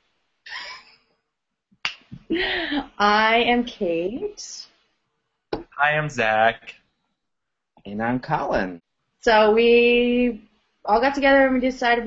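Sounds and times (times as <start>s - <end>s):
sharp snap: 1.8s - 2.2s
person laughing: 2.3s - 2.8s.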